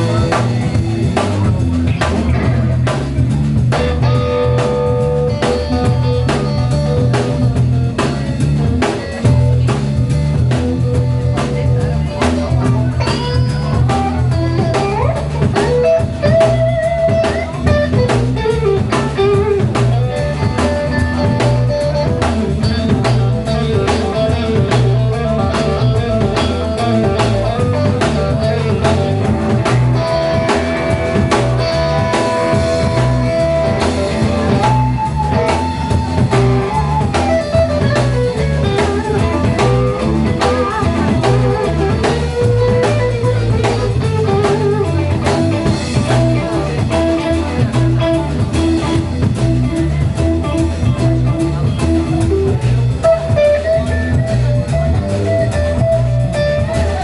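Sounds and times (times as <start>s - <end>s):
double bass line: 0.0s - 57.0s
drum kit beat: 0.0s - 57.0s
electric guitar lead line: 0.0s - 57.0s.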